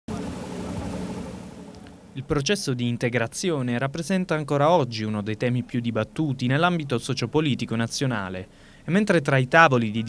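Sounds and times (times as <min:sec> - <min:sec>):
low engine drone: 0:00.0 - 0:02.3
background hum: 0:00.1 - 0:10.0.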